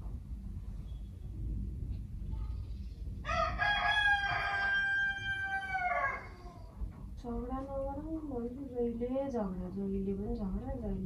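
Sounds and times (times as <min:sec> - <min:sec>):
rooster crowing: 0:03.2 - 0:06.7.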